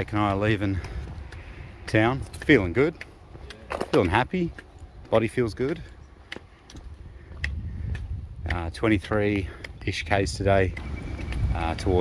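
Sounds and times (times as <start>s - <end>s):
footsteps on concrete: 0.0s - 12.0s.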